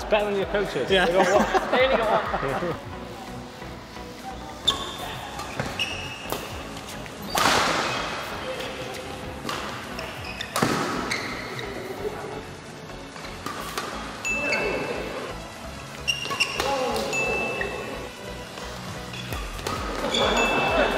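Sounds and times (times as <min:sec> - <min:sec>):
background music: 0:00.0 - 0:20.9
court shoes squeaking: 0:03.2 - 0:20.9
rackets striking shuttlecock: 0:04.6 - 0:11.7, 0:13.4 - 0:14.7, 0:16.1 - 0:17.8, 0:18.6 - 0:20.8.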